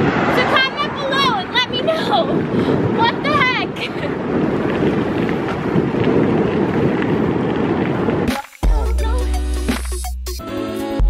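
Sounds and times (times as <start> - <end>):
wind buffeting microphone: 0.0 - 10.0
woman's voice: 0.3 - 4.1.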